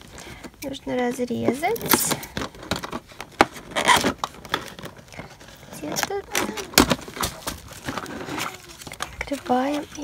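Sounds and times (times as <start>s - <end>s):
plastic crinkling: 1.4s - 10.0s.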